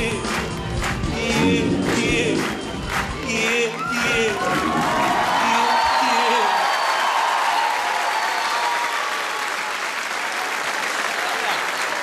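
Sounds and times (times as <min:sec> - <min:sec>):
pop band playing: 0:00.0 - 0:06.4
voices singing: 0:01.0 - 0:06.4
audience cheering: 0:01.1 - 0:12.0.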